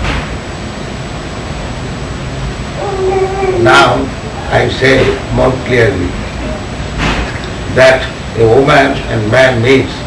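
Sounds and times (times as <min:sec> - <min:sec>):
old recording hiss: 0:00.0 - 0:10.0.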